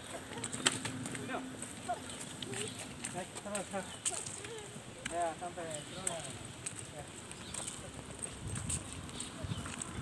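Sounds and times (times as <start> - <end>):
footsteps on concrete: 0.0 - 10.0
small birds chirping: 0.0 - 10.0.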